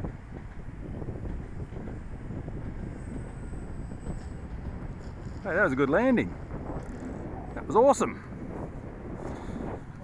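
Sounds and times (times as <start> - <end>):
train rumbling past: 0.0 - 10.0
wind buffeting microphone: 0.0 - 10.0.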